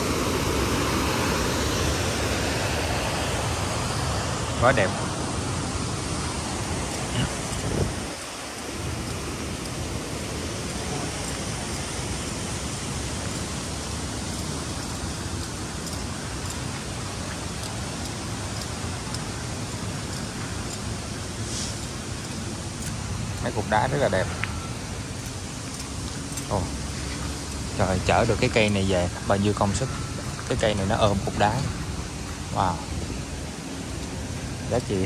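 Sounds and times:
mountain stream rushing: 0.0s - 35.0s.

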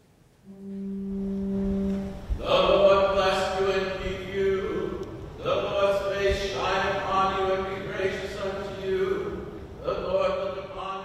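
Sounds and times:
church organ held note: 0.4s - 11.0s.

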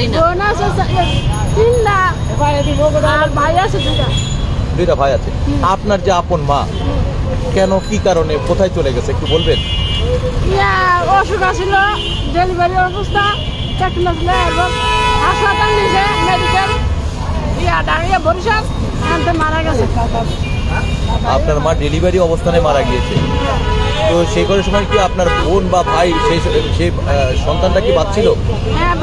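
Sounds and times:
people talking: 0.0s - 4.2s, 4.9s - 29.0s.

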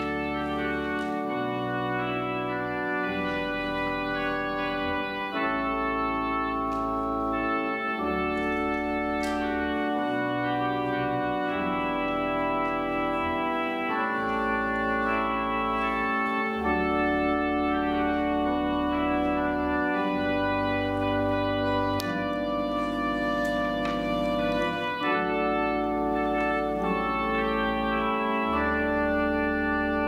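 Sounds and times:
pipe organ chords: 0.0s - 30.0s.

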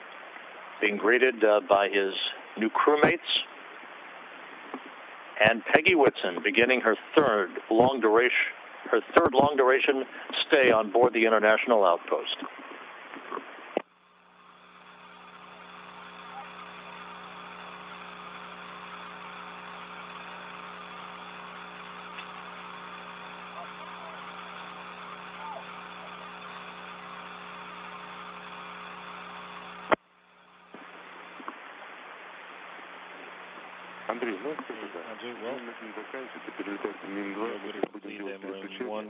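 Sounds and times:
cabin fans hiss and hum: 13.8s - 39.0s.

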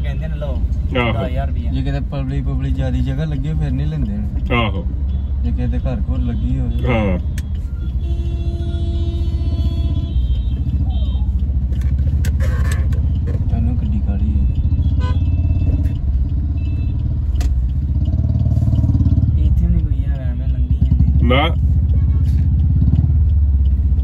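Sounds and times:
car engine and tyres rumbling: 0.0s - 24.0s.

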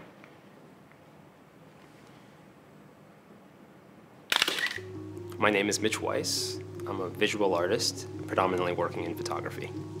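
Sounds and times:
camera shutter clicks: 4.3s - 4.8s
low music notes: 4.8s - 10.0s.

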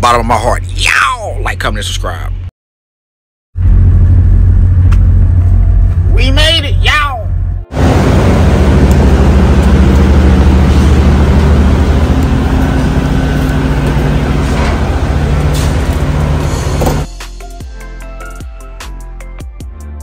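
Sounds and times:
diesel engine drone: 3.6s - 17.3s.

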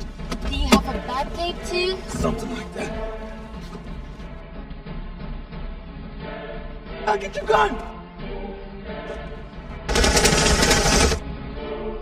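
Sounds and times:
background music: 0.0s - 12.0s
rapid pistol gunfire: 9.9s - 11.2s.

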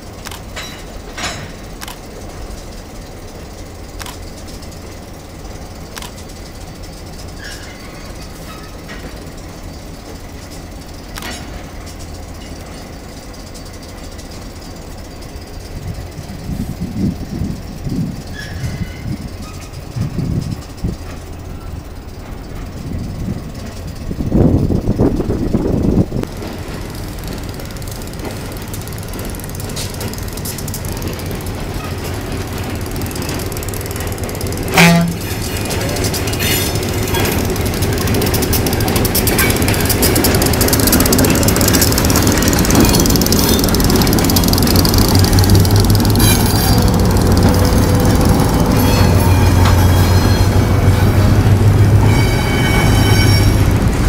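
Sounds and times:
diesel locomotive engine running: 0.0s - 54.0s
rail wheel noise: 0.0s - 54.0s.

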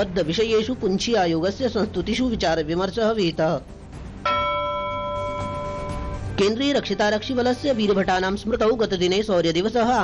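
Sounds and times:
bell-like chime: 4.2s - 6.3s.

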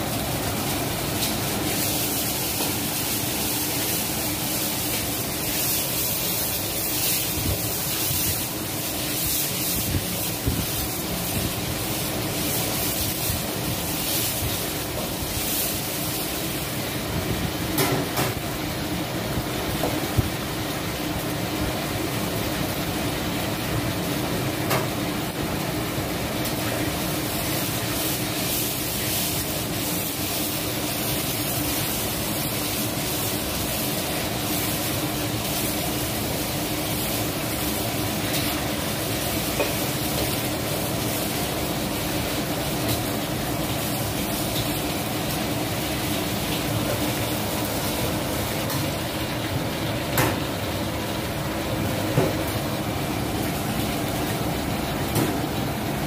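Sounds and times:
food sizzling in woks: 0.0s - 56.0s
gas burners roaring: 0.0s - 56.0s.

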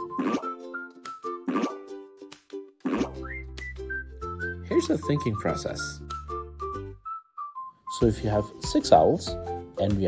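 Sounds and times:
cartoon pop sound effects: 0.0s - 0.6s, 1.4s - 1.9s, 2.8s - 3.3s
cheerful children's music: 0.0s - 10.0s.

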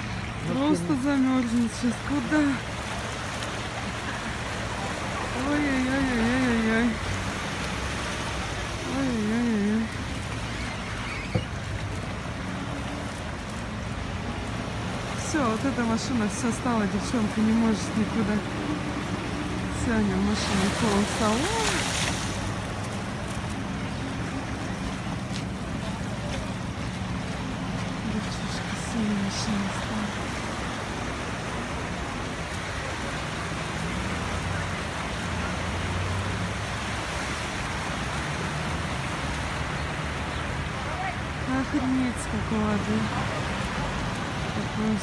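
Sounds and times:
car tyres splashing through water: 0.0s - 45.0s.

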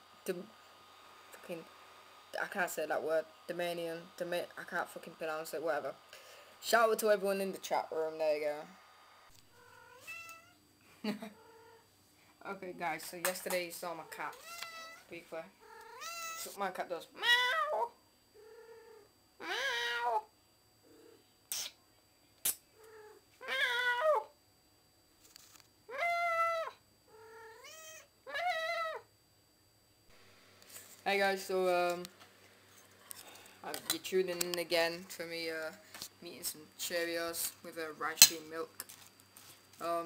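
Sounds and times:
cat meowing: 9.6s - 10.6s, 14.3s - 15.1s, 15.7s - 16.5s, 19.4s - 20.2s, 22.9s - 24.3s, 25.9s - 29.0s.

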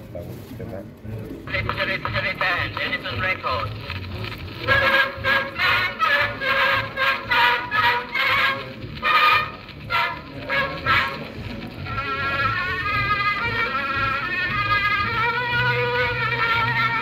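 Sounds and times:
thin nasal phonograph music: 1.2s - 17.0s.

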